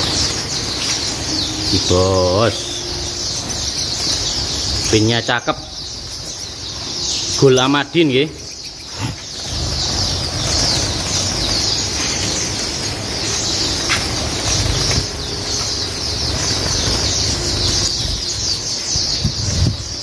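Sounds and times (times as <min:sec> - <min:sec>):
birds fluttering wings: 0:00.0 - 0:01.8, 0:08.5 - 0:20.0
small birds chirping: 0:00.0 - 0:20.0.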